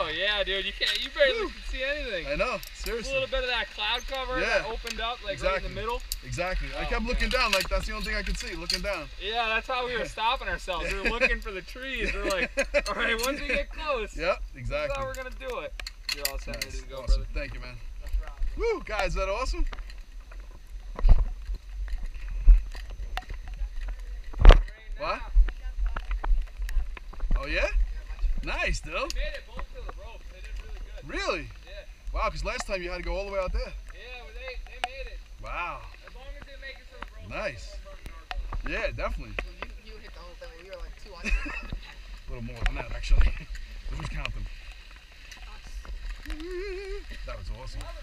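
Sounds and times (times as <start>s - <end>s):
distant voices calling out: 22.1s - 48.0s
person's wavering vocal call: 46.3s - 47.2s.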